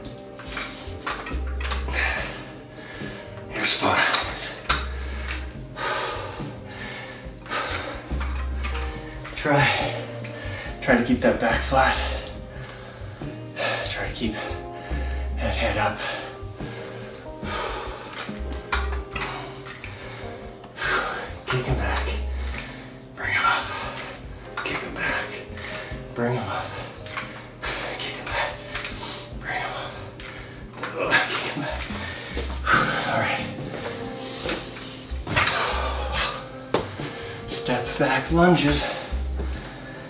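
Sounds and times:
background music from tv: 0.0s - 40.0s.

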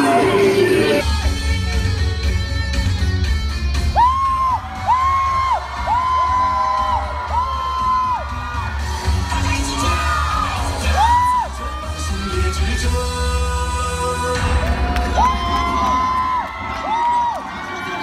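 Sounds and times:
stage music with heavy beat: 0.0s - 18.0s.

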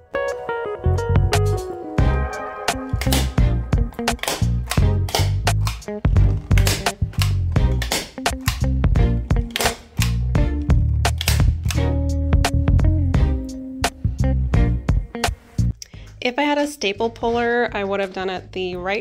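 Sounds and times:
background music with beat: 0.0s - 15.8s
staple gun snapping: 4.0s - 10.3s, 11.1s - 11.9s.

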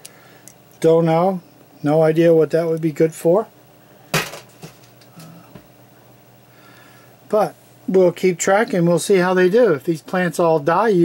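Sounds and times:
man humming low: 5.1s - 5.6s.

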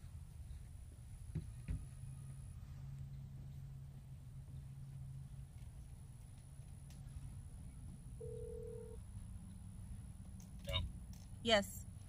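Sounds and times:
faint low hum: 0.0s - 12.0s
phone call-progress beep: 8.2s - 9.0s.

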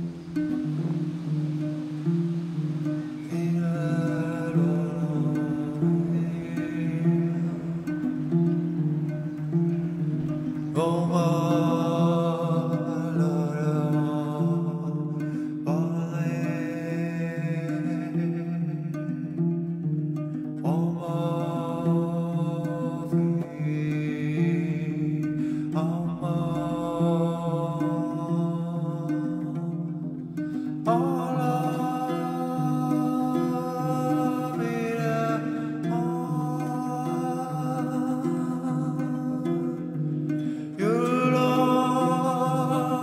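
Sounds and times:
long wordless sung notes: 0.0s - 43.0s
plucked harp pattern: 0.0s - 43.0s.

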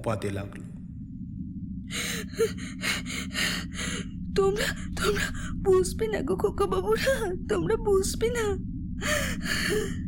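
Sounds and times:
low steady hum: 0.0s - 10.0s
person sobbing with gasping breaths: 1.9s - 5.6s, 9.0s - 10.0s.

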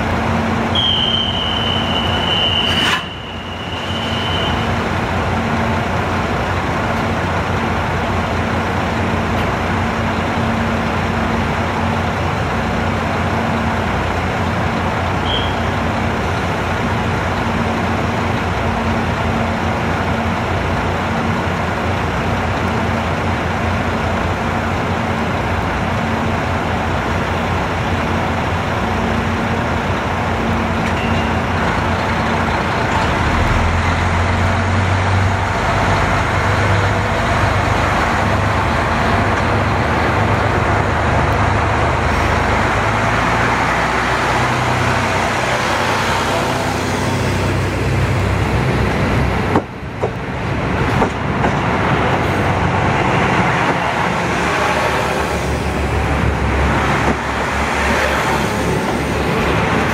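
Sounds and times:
diesel engines idling: 4.2s - 59.9s.

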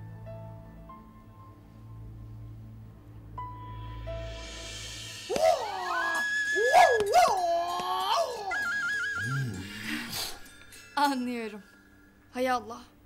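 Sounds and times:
dog-like whining howls: 5.3s - 9.7s.

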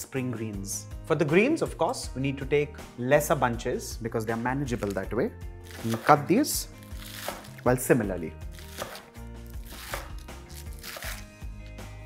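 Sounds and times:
background music: 0.0s - 12.0s
knife chopping on wooden board: 5.7s - 6.3s, 7.0s - 7.6s, 8.6s - 11.2s.

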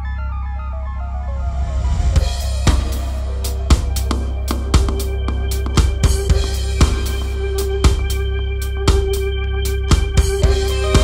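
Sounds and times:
low bass note: 0.0s - 11.0s
rock drum kit hits: 9.9s - 11.0s.

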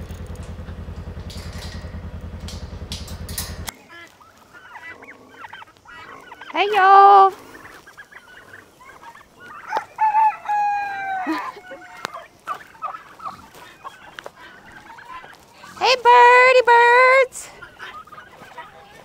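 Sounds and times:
poultry clucking and peeping: 0.0s - 19.0s.

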